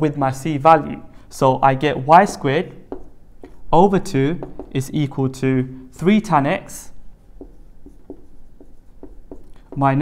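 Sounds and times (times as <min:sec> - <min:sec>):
marker writing on whiteboard: 0:01.5 - 0:05.4, 0:06.0 - 0:10.0.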